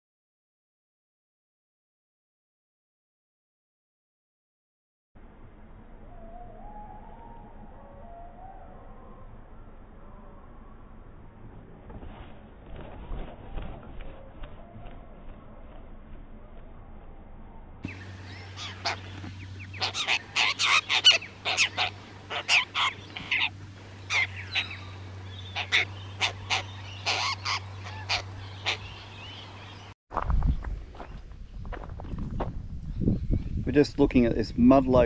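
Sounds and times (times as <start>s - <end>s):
faint low hum: 5.2s - 35.0s
birds making harsh calls: 17.8s - 29.9s
wind rumbling on microphone: 30.1s - 35.0s.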